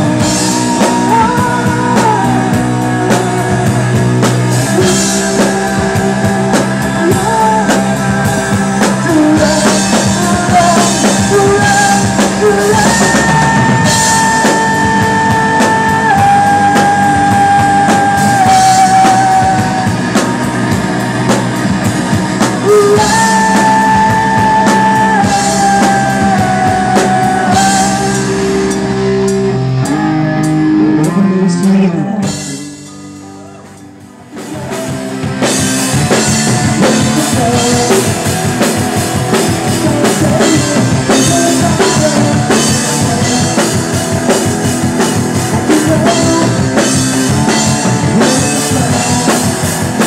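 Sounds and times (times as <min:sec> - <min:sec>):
drum kit steady beat: 0:00.0 - 0:33.0, 0:33.7 - 0:50.0
electric guitar: 0:00.0 - 0:50.0
male lead vocal: 0:00.0 - 0:50.0.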